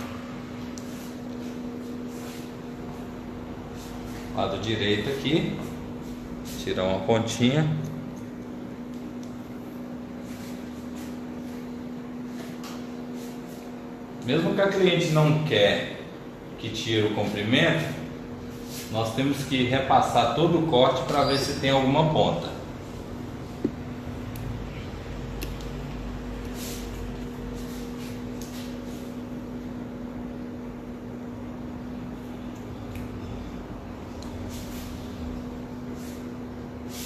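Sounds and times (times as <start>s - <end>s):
low electrical hum: 0.0s - 37.0s.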